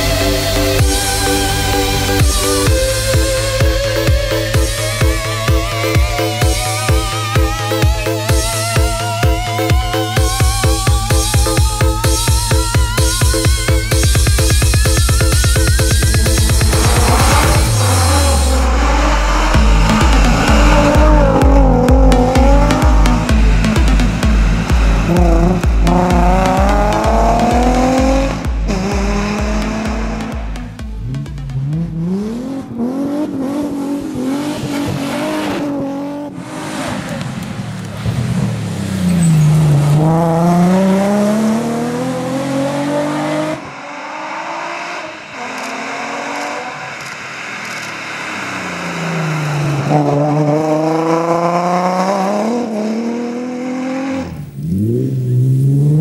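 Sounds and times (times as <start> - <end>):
music with pounding beat: 0.0 - 33.6
car engine revving hard: 0.0 - 56.0.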